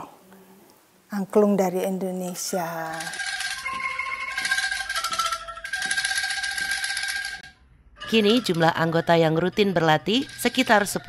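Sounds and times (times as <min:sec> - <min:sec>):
bamboo angklungs rattling melody: 0:02.8 - 0:11.0.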